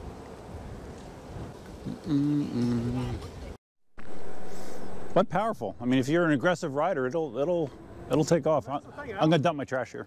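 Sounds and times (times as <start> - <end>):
wind rushing over microphone: 0.0 - 3.6.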